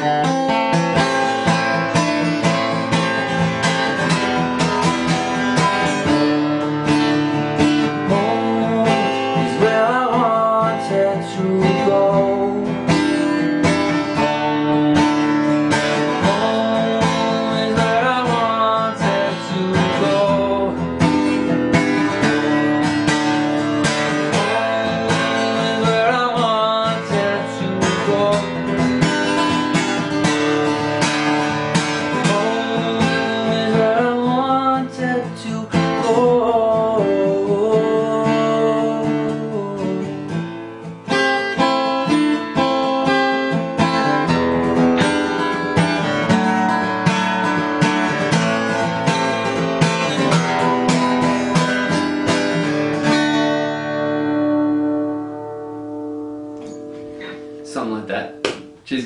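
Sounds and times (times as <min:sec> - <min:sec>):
man singing: 0:00.0 - 0:01.6, 0:07.6 - 0:13.5, 0:14.1 - 0:23.0, 0:23.8 - 0:29.4, 0:31.9 - 0:40.5, 0:49.9 - 0:51.9
strummed acoustic guitar: 0:00.0 - 0:59.0.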